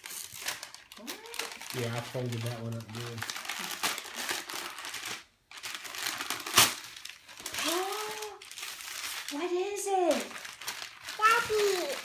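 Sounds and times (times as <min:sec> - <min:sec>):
wrapping paper crinkling and tearing: 0:00.0 - 0:12.0
young child calling out: 0:11.2 - 0:12.0.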